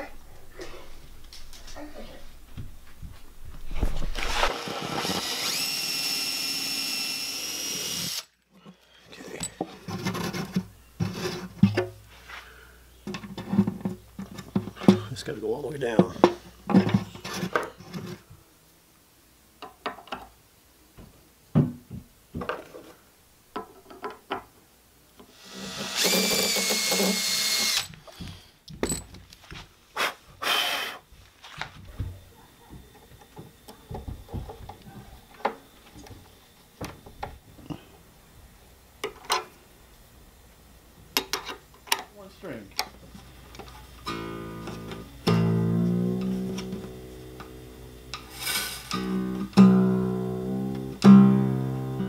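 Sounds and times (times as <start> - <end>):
power drill whining: 4.2 - 8.3, 25.3 - 28.0.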